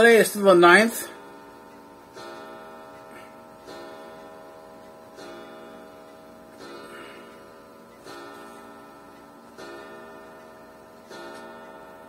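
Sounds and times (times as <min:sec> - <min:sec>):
clock chiming: 0:00.0 - 0:12.0.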